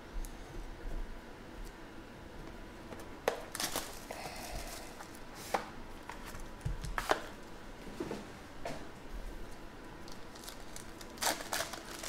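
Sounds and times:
trading cards rustling: 10.1s - 12.0s.

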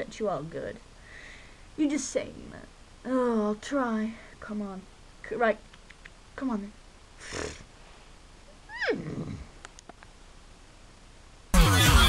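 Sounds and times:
faint clicks: 5.6s - 6.2s, 9.6s - 10.2s
person imitating horse whinny: 8.6s - 9.6s.

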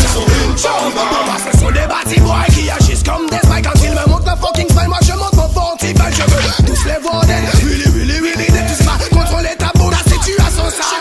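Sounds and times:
rapping over bass-heavy beat: 0.0s - 11.0s.

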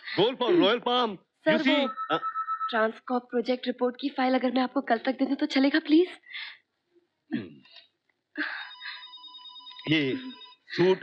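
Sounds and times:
telephone ringing: 1.5s - 3.0s, 8.4s - 10.8s.

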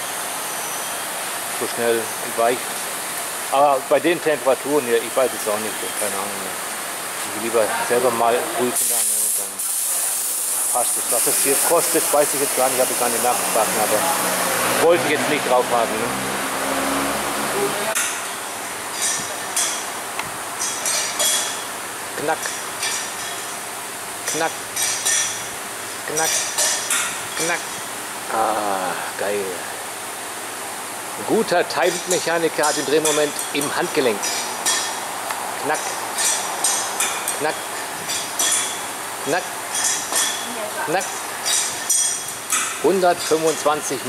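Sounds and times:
wrench clinking on wheel nuts: 20.6s - 21.7s, 39.7s - 40.5s, 41.4s - 43.7s.

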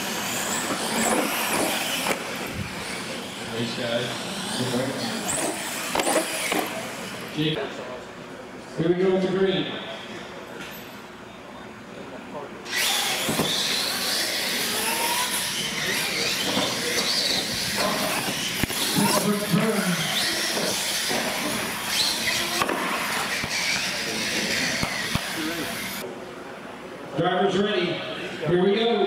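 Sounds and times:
toy trucks electric motors whirring: 0.0s - 7.4s, 12.7s - 26.0s
voices: 0.0s - 29.0s.

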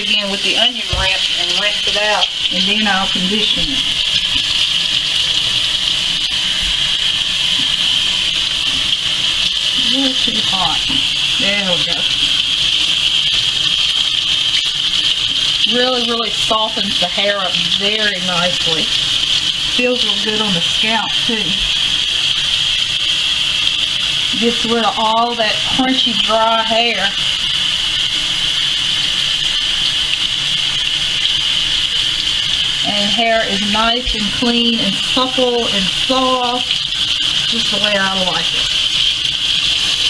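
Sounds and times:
faucet water running: 0.0s - 40.0s
water splashing into metal sink: 0.0s - 40.0s.

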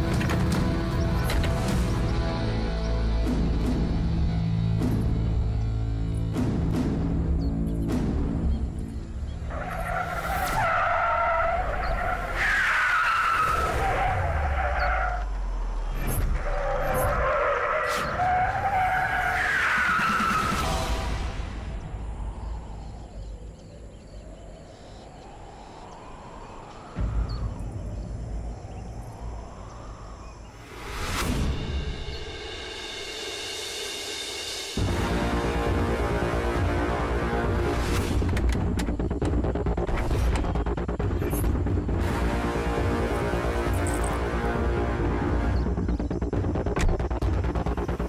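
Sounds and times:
car tyres screeching: 9.4s - 21.0s.

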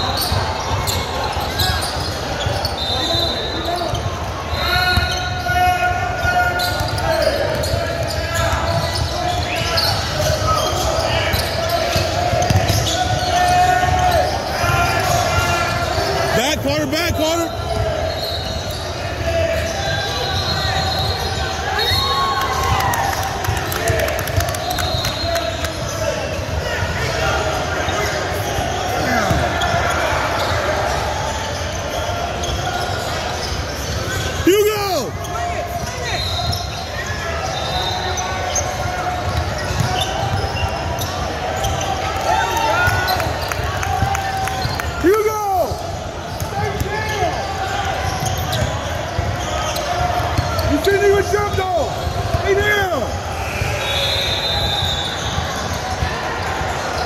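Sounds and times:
echoing voices in hall: 0.0s - 57.0s
basketball bouncing on hardwood: 12.4s - 12.8s.

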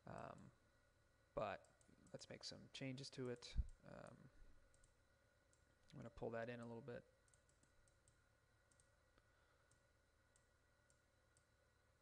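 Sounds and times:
faint room hum: 0.0s - 12.0s
computer mouse clicks: 4.7s - 6.0s, 7.2s - 11.5s.

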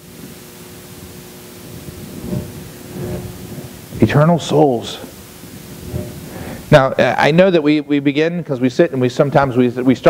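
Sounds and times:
room and sound system hiss: 0.0s - 10.0s.

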